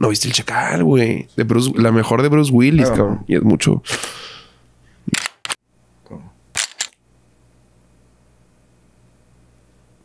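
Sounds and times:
toy gun snapping clicks: 5.2s - 5.6s, 6.6s - 7.0s.

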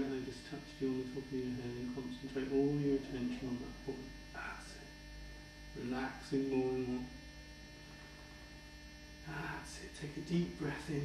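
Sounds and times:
faint mains hum: 0.0s - 11.0s.

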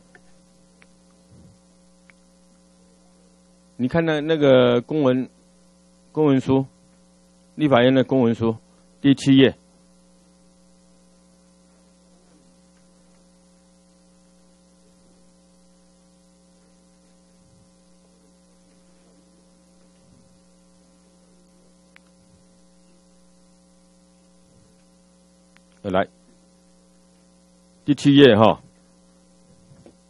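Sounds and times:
low electrical hum: 0.0s - 30.0s.

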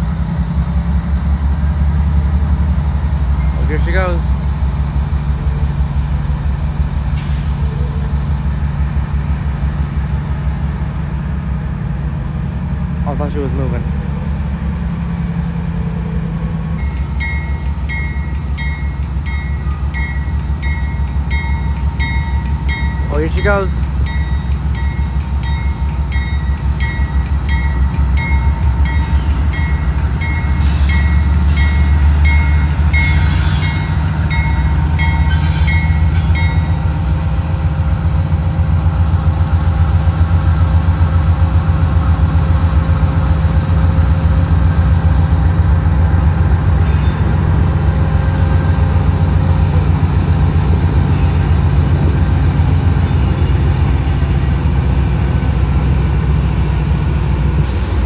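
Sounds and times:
diesel locomotives rumbling: 0.0s - 58.0s
locomotive bell ringing: 16.8s - 37.0s.

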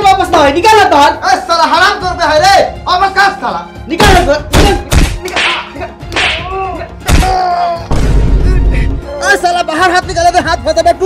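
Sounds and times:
stick whacking on wood: 4.0s - 7.4s.

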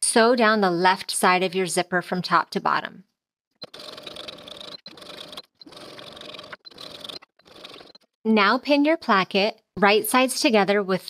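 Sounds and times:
sewing machine stitching: 3.6s - 8.2s.

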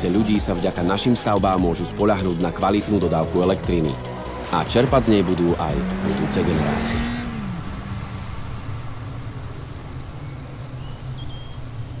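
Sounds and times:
low rumble with hiss: 2.6s - 12.0s.

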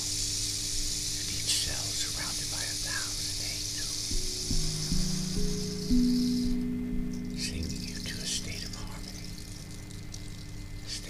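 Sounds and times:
steady high hiss: 0.0s - 11.0s
low ringing tones: 4.1s - 11.0s.

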